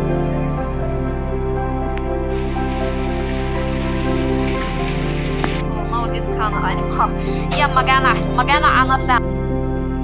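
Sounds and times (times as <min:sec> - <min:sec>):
background music: 0:00.0 - 0:10.0
fish sizzling in hot oil: 0:02.3 - 0:05.6.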